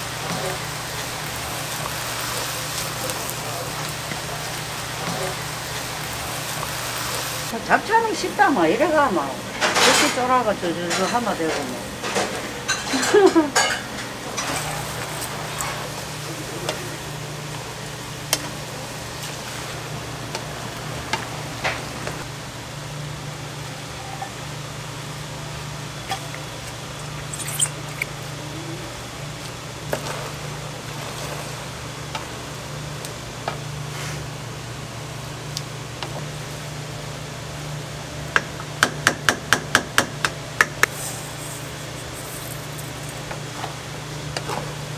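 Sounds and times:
noodles sizzling in a frying pan: 0:00.0 - 0:38.8, 0:40.3 - 0:44.9.

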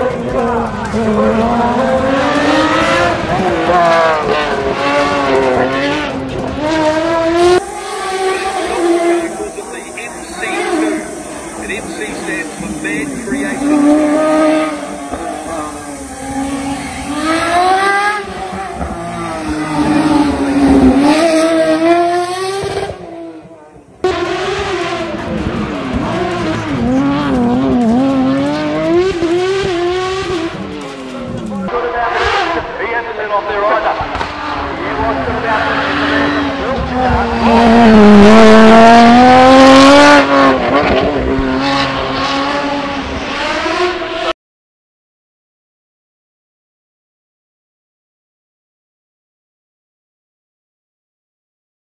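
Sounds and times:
race car engine revving: 0:00.0 - 0:44.4.

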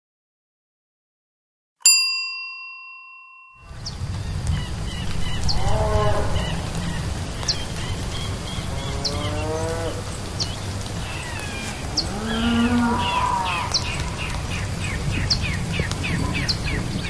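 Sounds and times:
steady low rumble: 0:03.7 - 0:17.0
long low animal calls: 0:04.2 - 0:16.8.

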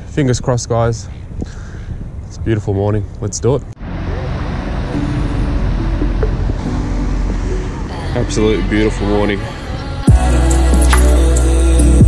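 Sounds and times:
ferry engines droning: 0:00.0 - 0:12.0.

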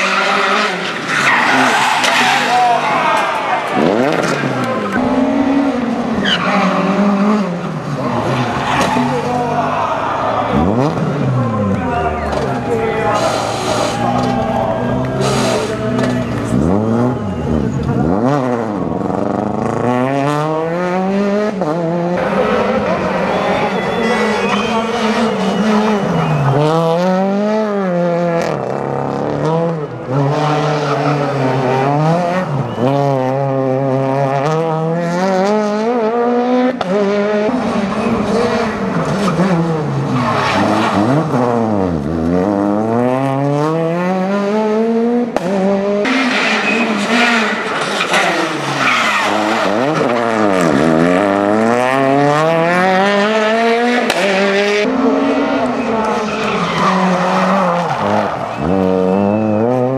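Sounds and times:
tyres skidding and squealing: 0:00.0 - 0:44.2, 0:44.8 - 0:59.9
car engine revving hard: 0:13.2 - 0:59.9.

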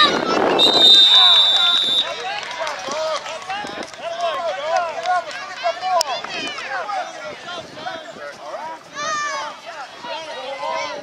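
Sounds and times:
people shouting: 0:00.5 - 0:02.8
long whistle blast: 0:00.6 - 0:02.1.

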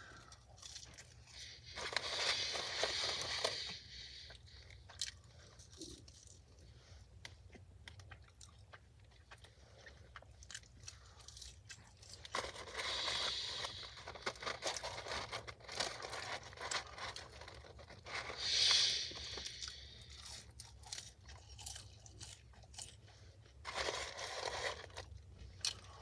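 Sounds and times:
person chewing fries: 0:00.0 - 0:26.0.

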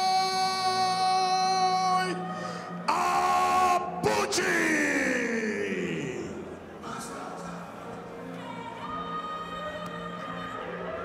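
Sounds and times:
announcer calling over loudspeaker: 0:00.0 - 0:06.5.

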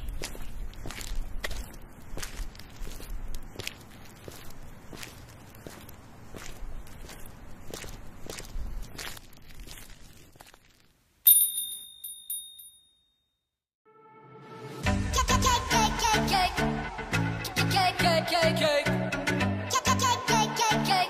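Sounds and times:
footsteps on wet pavement: 0:00.0 - 0:11.0
small bell chiming: 0:11.3 - 0:13.3.

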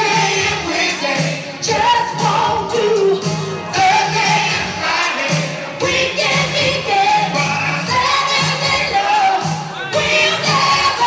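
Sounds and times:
band playing steady beat: 0:00.0 - 0:11.0
person singing: 0:00.0 - 0:11.0.

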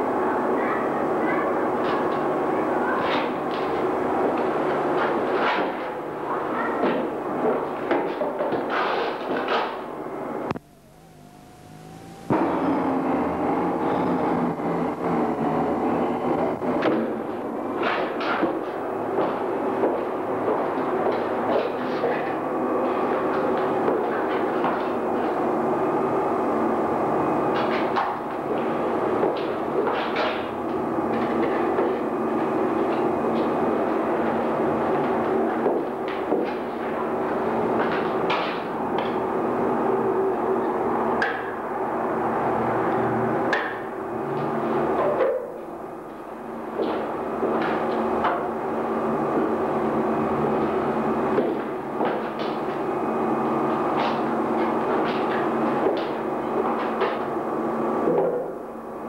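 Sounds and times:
wavering tonal hum: 0:09.9 - 0:16.8.

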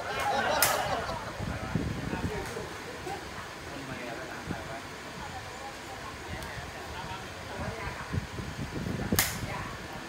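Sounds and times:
murmur of voices: 0:00.0 - 0:10.0
sharp crack: 0:09.1 - 0:09.5.

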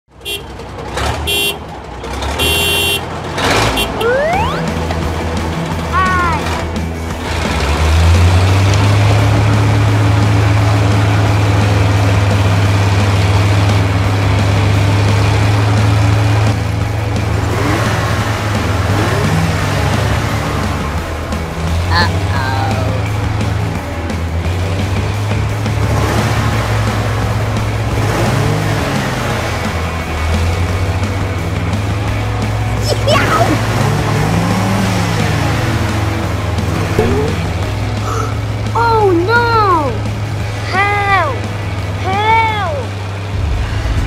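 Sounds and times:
background music: 0:00.1 - 0:44.0
low engine-like drone: 0:42.8 - 0:44.0.

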